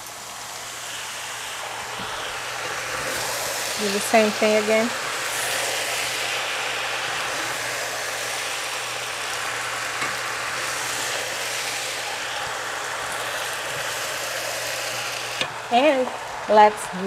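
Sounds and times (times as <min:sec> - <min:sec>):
food sizzling in a wok: 0:00.0 - 0:17.0.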